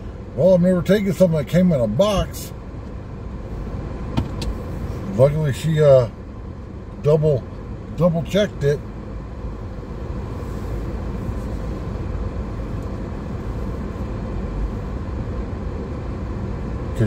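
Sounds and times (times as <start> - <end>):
car engine and road noise: 0.0 - 17.0.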